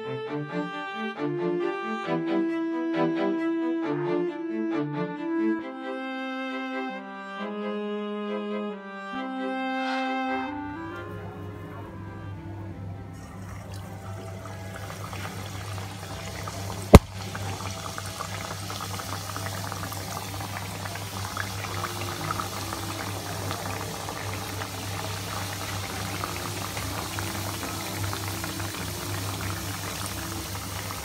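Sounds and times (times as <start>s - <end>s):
dough sizzling in hot oil: 13.4s - 31.0s.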